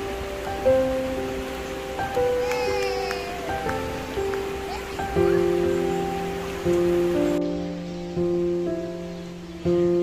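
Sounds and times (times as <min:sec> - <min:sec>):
gentle instrumental music: 0:00.0 - 0:10.0
shallow river rushing: 0:00.0 - 0:10.0.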